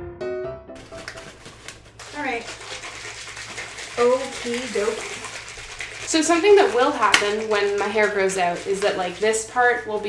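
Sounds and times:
piano music: 0.0 - 1.6.

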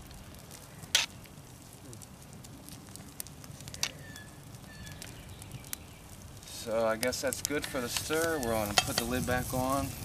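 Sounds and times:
fire and simmering crackle: 0.0 - 10.0
metal spatula stirring chili: 7.5 - 9.3.

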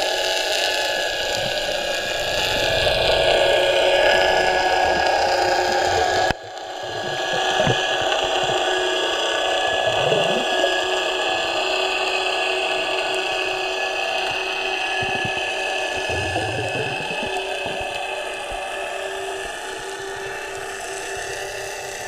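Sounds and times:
steady underwater hum: 0.0 - 22.0
low underwater rumble: 1.0 - 11.5, 13.1 - 19.4.

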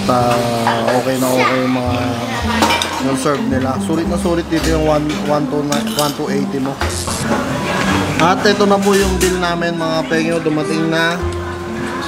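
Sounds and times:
people's voices: 0.0 - 12.0
dishes and cutlery clinking: 0.1 - 1.6, 2.3 - 9.7.

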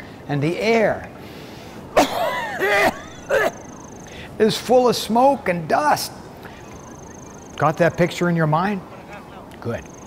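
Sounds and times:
faint high steady tone: 3.0 - 4.3, 6.5 - 8.2, 9.7 - 10.0.

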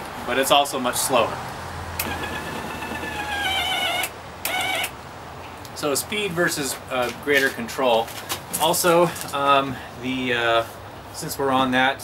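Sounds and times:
electric motor whining: 2.0 - 4.9.

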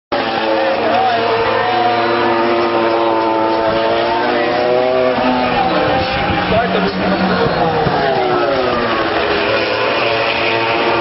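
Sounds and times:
crowd chatter: 0.1 - 11.0
racing motorcycle engines revving: 0.1 - 11.0.

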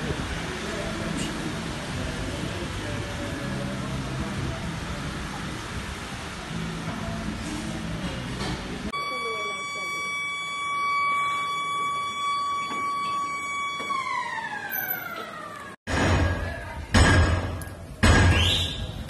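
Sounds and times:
street noise with low hum: 0.0 - 19.0.

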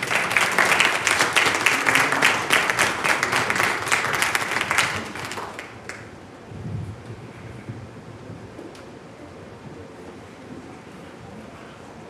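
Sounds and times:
crowd applauding: 0.0 - 6.2.

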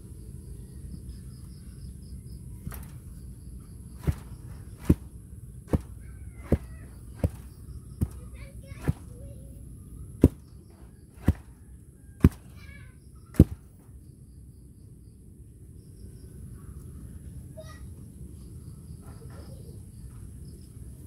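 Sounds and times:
hand tamper pounding soil: 2.6 - 3.3, 3.9 - 9.2, 10.2 - 11.6, 12.2 - 13.8.

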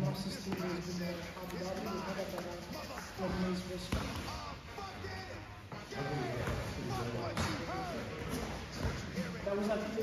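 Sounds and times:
voices talking: 0.0 - 10.0.

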